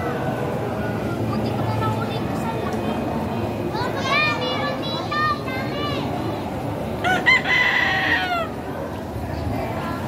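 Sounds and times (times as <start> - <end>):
steady background rush: 0.0 - 10.0
rooster crowing: 7.0 - 8.6.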